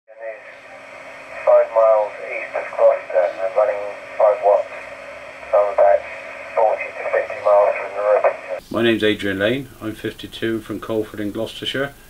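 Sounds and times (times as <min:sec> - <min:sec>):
tinny radio speech: 0:00.1 - 0:08.9
radio hiss: 0:00.1 - 0:12.0.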